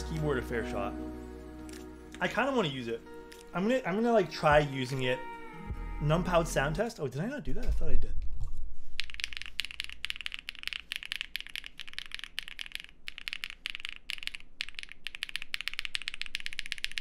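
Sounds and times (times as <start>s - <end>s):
mechanical keyboard typing: 9.0s - 17.0s.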